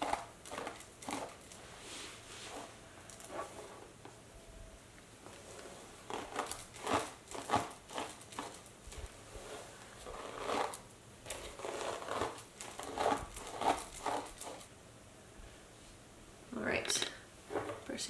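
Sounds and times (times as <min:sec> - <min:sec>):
hairbrush strokes through hair: 0:01.6 - 0:03.8.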